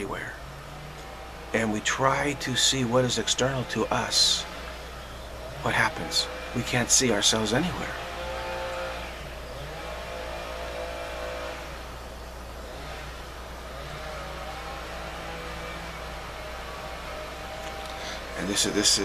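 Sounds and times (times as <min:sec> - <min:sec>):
constant low hum: 0:00.0 - 0:19.0
motor drone: 0:00.0 - 0:19.0.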